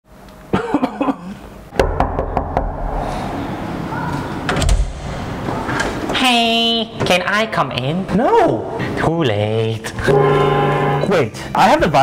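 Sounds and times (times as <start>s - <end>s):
knocking on door: 1.8s - 2.8s.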